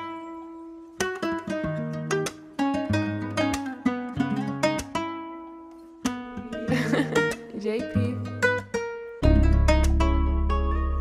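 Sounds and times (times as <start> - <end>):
plucked guitar melody: 0.0 - 11.0
low bass line: 9.2 - 11.0.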